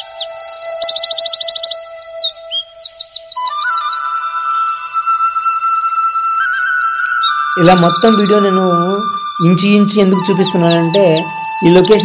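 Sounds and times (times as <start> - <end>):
bird chirps: 0.0 - 12.0
sustained background music: 0.0 - 12.0
whistled notes: 0.0 - 12.0.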